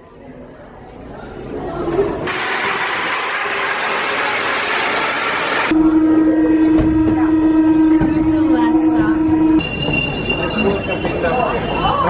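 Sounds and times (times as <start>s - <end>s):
high steady whine: 2.3s - 12.0s
train low electric tone: 5.7s - 12.0s
voices: 5.7s - 12.0s.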